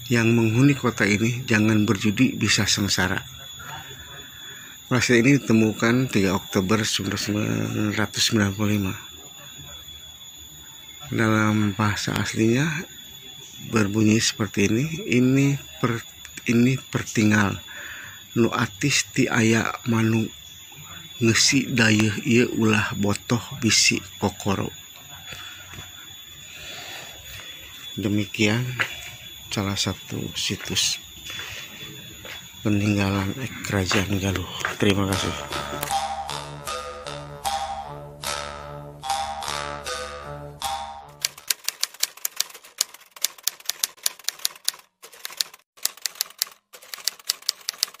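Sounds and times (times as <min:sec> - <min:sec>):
thin high-pitched whine: 0:00.0 - 0:41.5
struck musical notes: 0:33.6 - 0:41.2
typewriter keystrokes clacking: 0:41.2 - 0:48.0.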